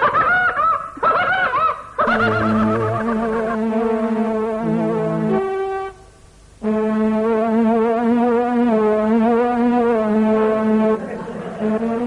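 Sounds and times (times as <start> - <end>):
high-pitched laughter: 0.0 - 3.9.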